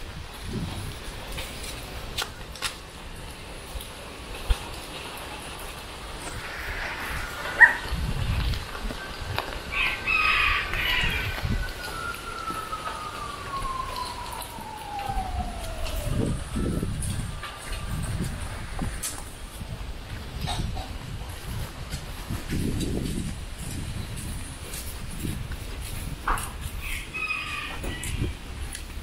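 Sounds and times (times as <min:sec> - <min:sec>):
wind buffeting microphone: 0:00.0 - 0:29.0
wind in trees: 0:00.0 - 0:29.0
thin tone sliding down: 0:06.0 - 0:09.2
rooster crowing: 0:06.3 - 0:08.0, 0:09.7 - 0:19.2, 0:26.8 - 0:28.4.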